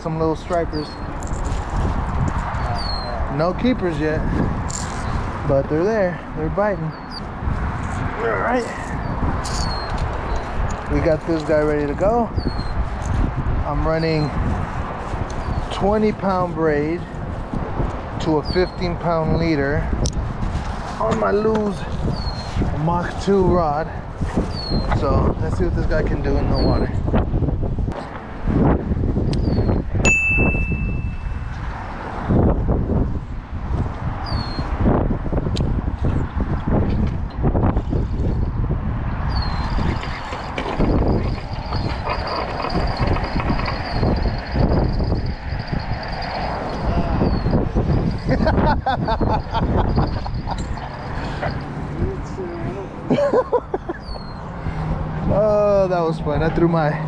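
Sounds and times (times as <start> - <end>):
gusty wind on microphone: 0.0 - 57.0
high steady tone: 30.0 - 31.5.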